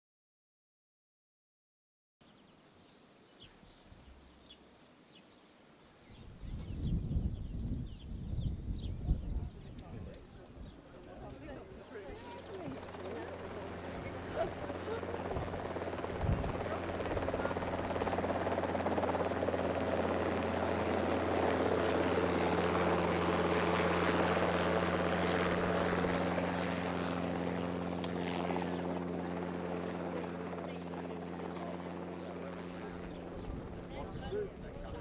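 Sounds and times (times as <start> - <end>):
helicopter hovering: 8.1 - 35.0.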